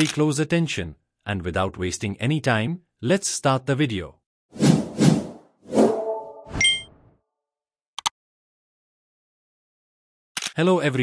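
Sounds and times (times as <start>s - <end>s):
swoosh: 4.6s - 6.9s
bright ding: 6.6s - 7.0s.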